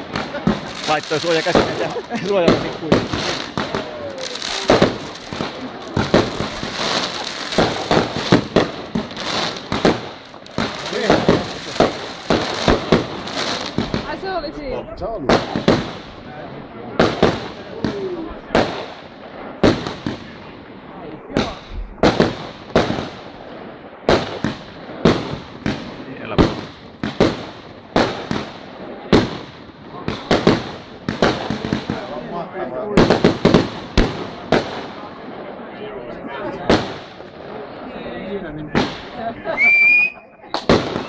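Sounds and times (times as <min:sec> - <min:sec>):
fireworks bursting with echoing bangs: 0:00.0 - 0:41.0.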